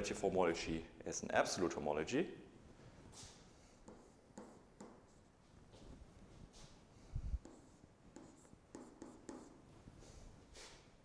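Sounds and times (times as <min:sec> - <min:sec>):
stylus tapping on tablet screen: 0:07.4 - 0:09.5.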